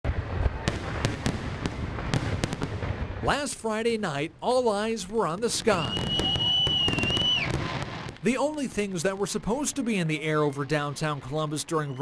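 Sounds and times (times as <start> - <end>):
low rumble of bursting shells: 0.0 - 3.3
firework bangs: 0.0 - 4.2, 4.8 - 12.0.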